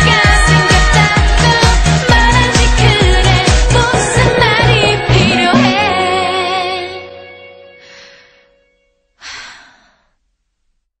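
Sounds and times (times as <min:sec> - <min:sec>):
breathy exhale: 0:07.8 - 0:08.6, 0:09.2 - 0:10.2.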